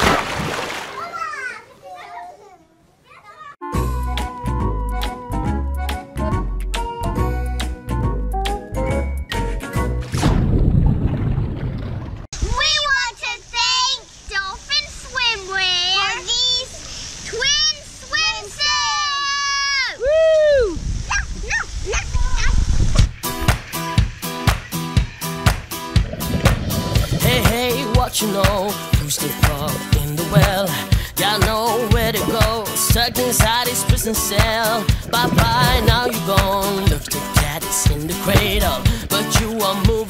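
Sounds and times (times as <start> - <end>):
girl making high yipping squeaks: 21.1 - 22.6.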